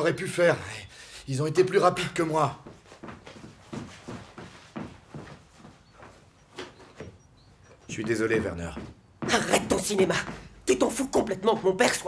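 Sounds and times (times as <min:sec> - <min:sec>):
footsteps in a room: 0:01.6 - 0:12.0.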